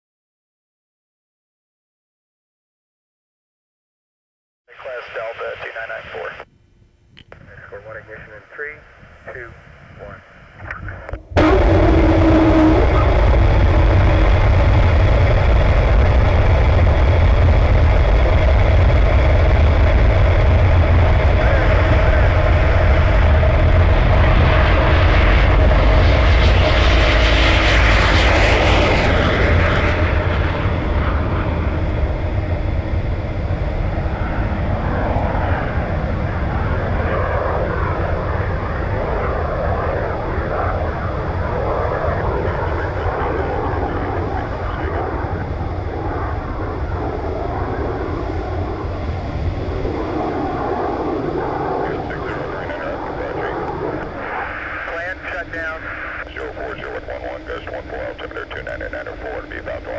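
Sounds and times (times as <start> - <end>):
rocket engine roaring with hiss: 11.4 - 32.6, 33.5 - 59.9.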